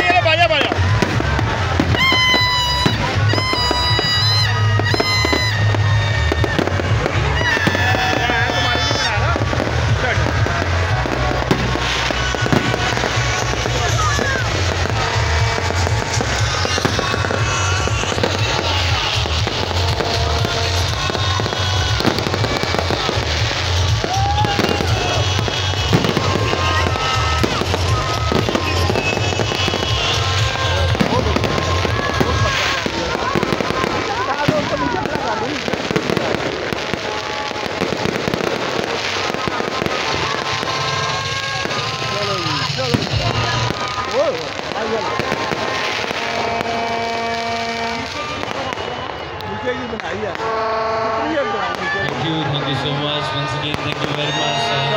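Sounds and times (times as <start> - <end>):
loud music with pulsing bass: 0.0 - 36.9
crowd voices: 0.0 - 54.9
fireworks bangs and crackles: 0.0 - 54.9.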